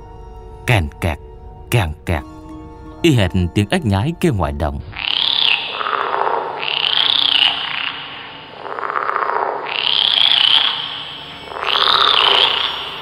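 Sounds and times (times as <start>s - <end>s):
frogs croaking: 0.0s - 13.0s.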